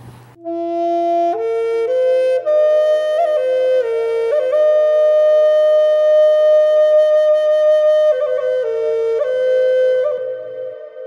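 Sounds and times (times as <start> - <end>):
flute holding a long note: 0.4 - 11.0.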